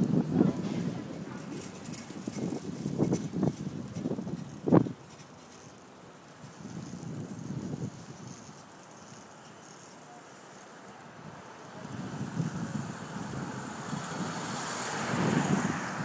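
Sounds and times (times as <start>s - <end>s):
wind buffeting microphone: 0.0s - 5.4s, 6.3s - 8.8s, 11.2s - 16.0s
outdoor street ambience: 0.0s - 16.0s.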